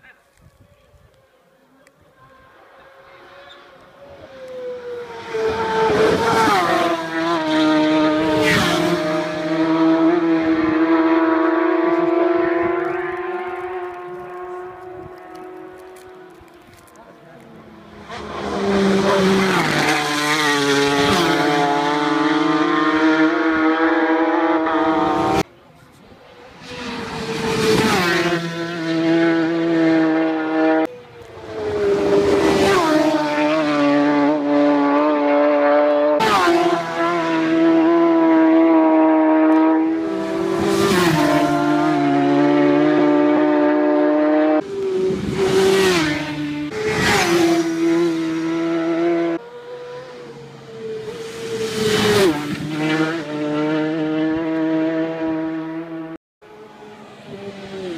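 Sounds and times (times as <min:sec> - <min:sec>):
racing motorcycles passing: 0:02.1 - 0:57.9.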